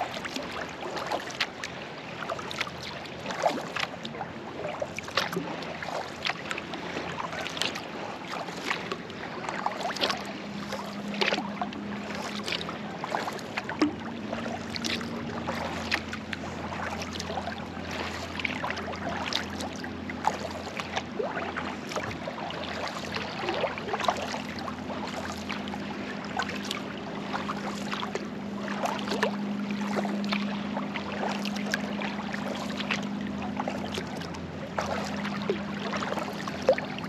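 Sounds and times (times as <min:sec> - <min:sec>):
kayak paddle splashes: 0:00.0 - 0:37.0.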